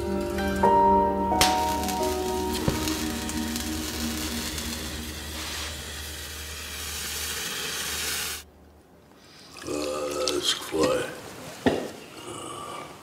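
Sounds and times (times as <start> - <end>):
low hum: 0.0 - 9.1
steady hissing: 1.4 - 8.5.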